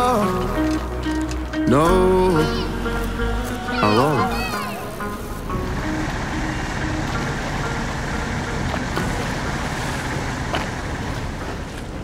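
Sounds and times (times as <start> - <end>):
boat engine running: 2.8 - 12.0.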